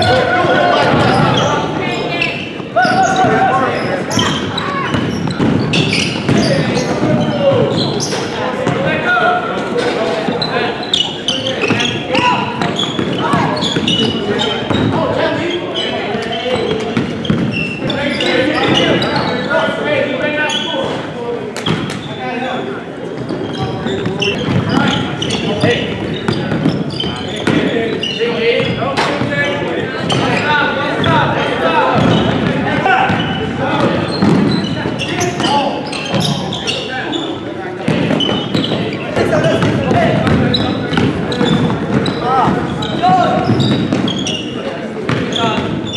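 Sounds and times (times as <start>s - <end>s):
echoing voices: 0.0s - 45.9s
basketballs bouncing on hardwood: 4.1s - 8.0s, 11.6s - 15.1s, 16.5s - 18.0s, 23.2s - 28.0s, 31.9s - 36.4s, 37.9s - 44.4s, 45.1s - 45.9s.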